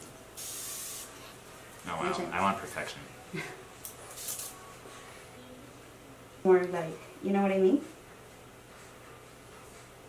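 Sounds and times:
spray bottle spritz: 0.4s - 1.1s, 4.1s - 4.5s.

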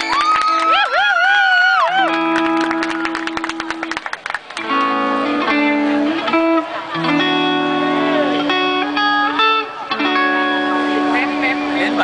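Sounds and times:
bending lead guitar note: 4.6s - 12.0s
live rock band playing: 4.6s - 12.0s.

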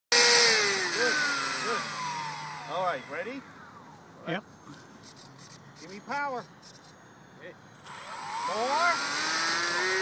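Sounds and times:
model plane motor and propeller: 0.1s - 3.4s, 7.8s - 10.0s.

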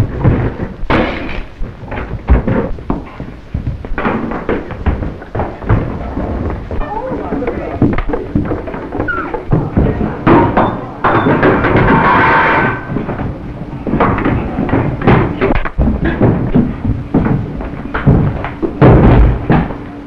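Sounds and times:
punches and thuds: 0.0s - 6.0s, 14.0s - 19.8s
scuffling against furniture: 0.0s - 10.6s.

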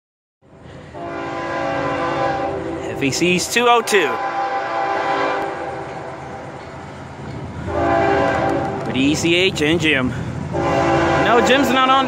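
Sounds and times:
locomotive air horn: 0.7s - 6.3s, 7.6s - 8.9s, 10.4s - 12.0s.

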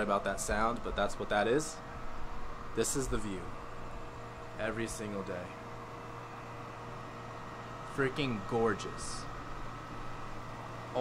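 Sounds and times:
air conditioner humming: 0.0s - 11.0s.

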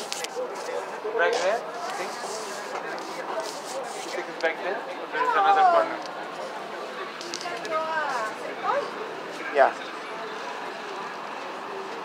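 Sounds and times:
busy shopping area background: 0.0s - 12.0s
faint distant voices: 0.0s - 12.0s.

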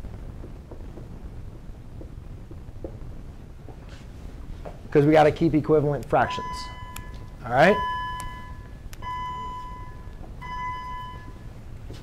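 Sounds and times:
electronic beeps: 6.2s - 11.5s.

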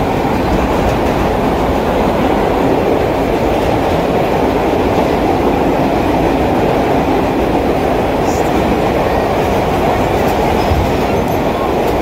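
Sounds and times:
subway train wheels rumbling: 0.0s - 12.0s.

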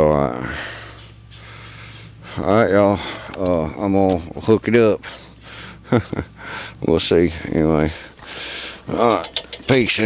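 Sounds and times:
man laughing: 5.6s - 6.6s.

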